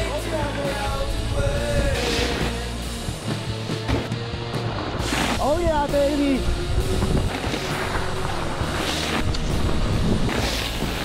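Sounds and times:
background music: 0:00.0 - 0:11.0
wind on microphone: 0:05.5 - 0:10.4
mountain bike rumbling on dirt: 0:06.5 - 0:11.0.

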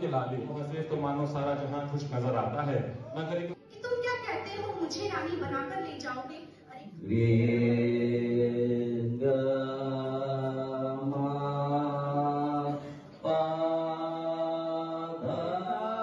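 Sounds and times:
man singing chant-like phrases: 0:07.0 - 0:16.0.

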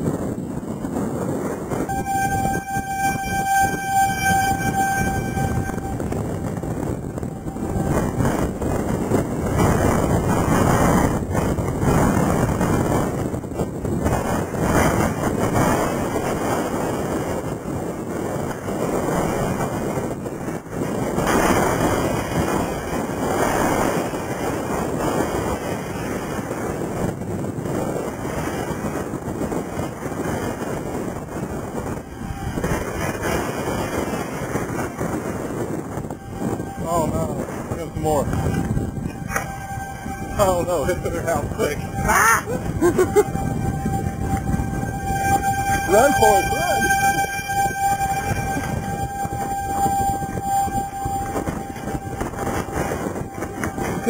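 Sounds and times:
gusting wind buffeting microphone: 0:00.0 - 0:54.0
steady horn-like tone: 0:00.8 - 0:54.0.

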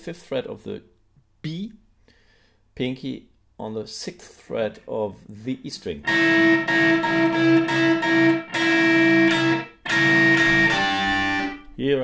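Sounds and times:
electric guitar chords: 0:06.0 - 0:11.7.

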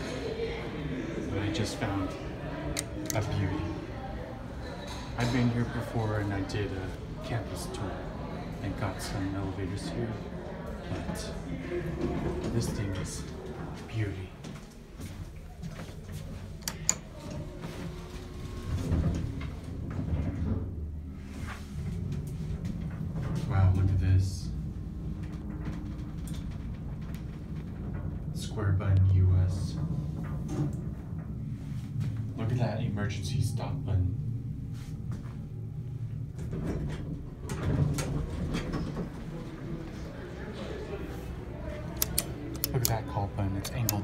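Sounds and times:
elevator rumble: 0:00.0 - 0:44.0
clicks: 0:16.6 - 0:17.1, 0:41.9 - 0:44.0
sliding door: 0:16.6 - 0:23.6, 0:36.0 - 0:39.8
sharp clicks: 0:42.0 - 0:43.0.

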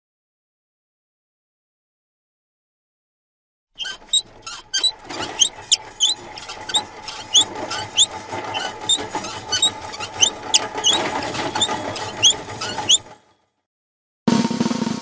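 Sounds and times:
short high rising squeaks: 0:03.8 - 0:13.2.

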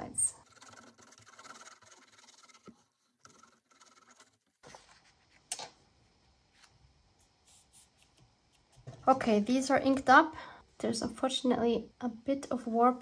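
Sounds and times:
glue nozzle scratching on board: 0:00.4 - 0:04.4
paper rustling: 0:03.4 - 0:05.6.

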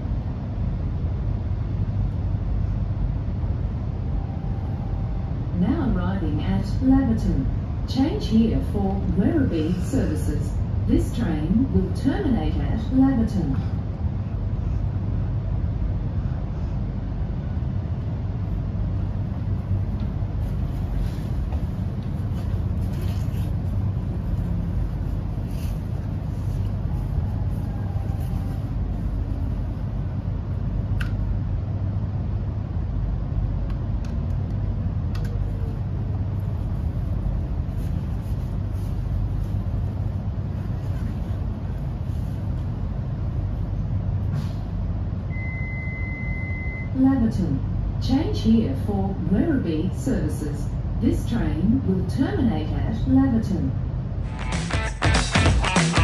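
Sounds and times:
train running rumble: 0:00.0 - 0:45.3, 0:46.9 - 0:56.0
steady high beep: 0:45.3 - 0:47.0.

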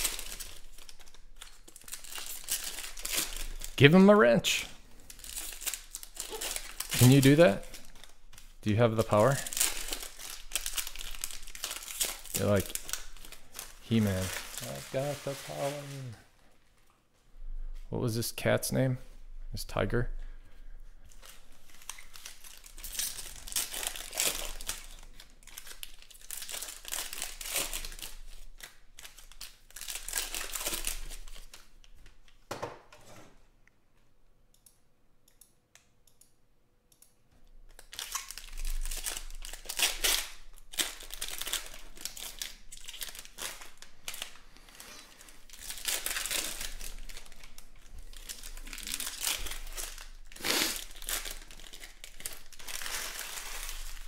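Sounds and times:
foil wrappers tearing and crinkling: 0:00.0 - 0:03.8, 0:05.0 - 0:16.2, 0:21.1 - 0:31.7, 0:37.8 - 0:54.0.

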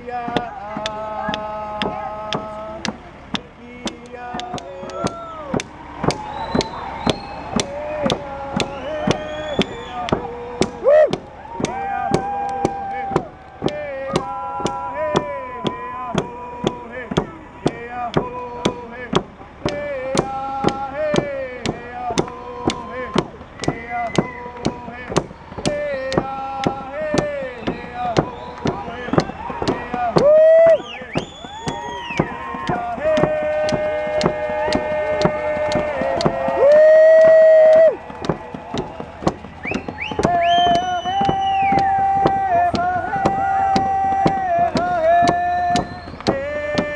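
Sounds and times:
loud sustained cries: 0:00.0 - 0:19.1, 0:19.7 - 0:46.9
group singing: 0:00.0 - 0:46.9
hand drums beating: 0:00.2 - 0:46.9.

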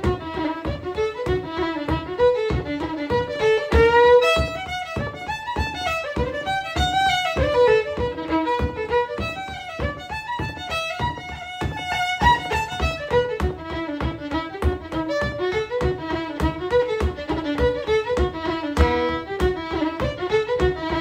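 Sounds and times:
solo fiddle tune: 0:00.0 - 0:21.0.

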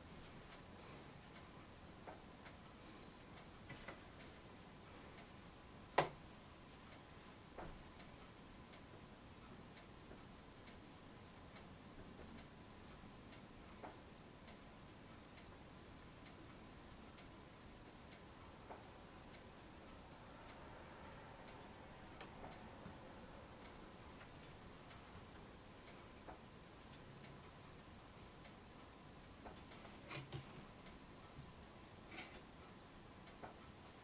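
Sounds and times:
faint evenly spaced ticks: 0:00.0 - 0:34.0.

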